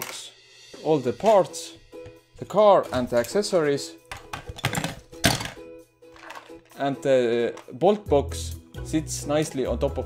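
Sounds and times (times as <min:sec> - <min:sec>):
background music: 0:00.0 - 0:10.0
plastic knocks and clatter: 0:04.1 - 0:05.6.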